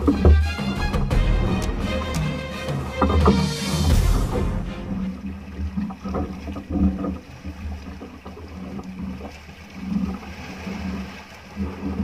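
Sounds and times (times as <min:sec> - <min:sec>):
boat engine humming: 0:00.0 - 0:12.0
water sloshing around hull: 0:00.0 - 0:12.0.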